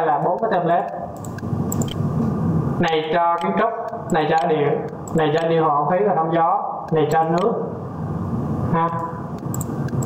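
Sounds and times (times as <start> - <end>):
low background noise: 0.0 - 10.0
computer mouse clicks: 0.4 - 2.0, 2.9 - 5.5, 6.9 - 7.5, 8.9 - 10.0.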